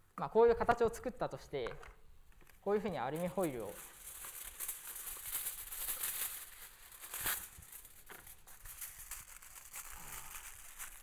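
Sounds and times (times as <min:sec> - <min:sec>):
foil crinkling: 0:03.0 - 0:11.0.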